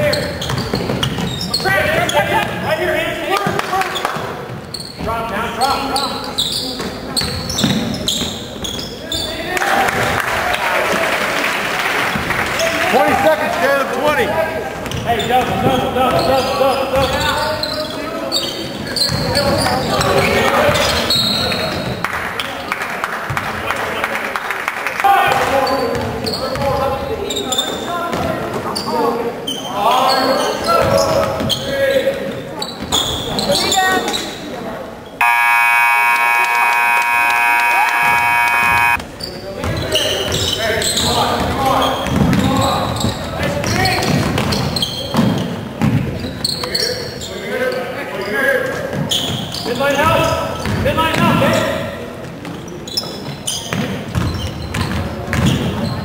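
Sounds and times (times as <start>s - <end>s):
basketball bouncing on wooden floor: 0.4s - 1.8s, 53.7s - 55.8s
spectators' voices: 33.2s - 39.6s
scoreboard buzzer: 35.2s - 39.0s.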